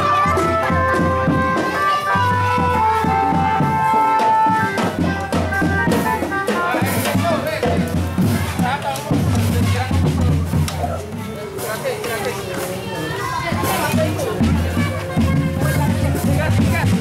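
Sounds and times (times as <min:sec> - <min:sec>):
held melody note: 0:00.0 - 0:07.2
marching band drums struck: 0:00.0 - 0:12.7, 0:13.5 - 0:17.0
children's voices: 0:00.0 - 0:17.0.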